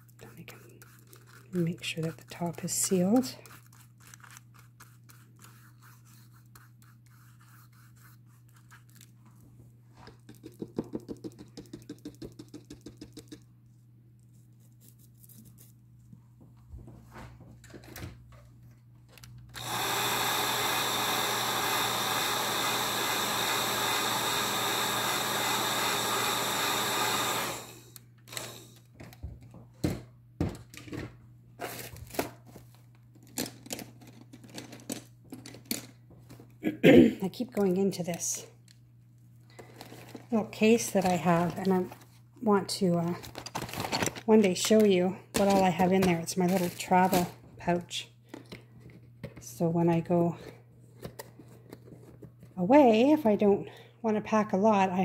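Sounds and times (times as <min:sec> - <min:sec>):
heat gun blowing: 0:19.6 - 0:28.8.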